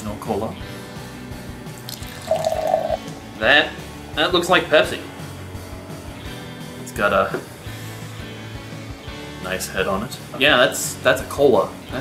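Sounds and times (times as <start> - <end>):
cola pouring and foaming: 1.8 - 3.0.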